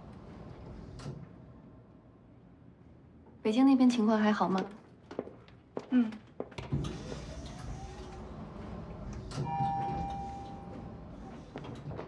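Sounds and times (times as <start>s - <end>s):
elevator running low rumble: 0.0s - 3.2s, 6.6s - 12.0s
elevator chime: 9.4s - 11.2s.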